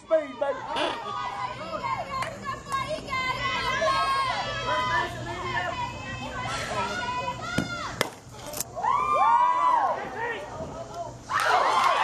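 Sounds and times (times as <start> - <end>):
crowd cheering shout: 0.0 - 8.0, 8.7 - 10.5, 11.3 - 12.0
spectators' voices: 0.0 - 9.0
softball bat hitting ball: 7.6 - 8.2.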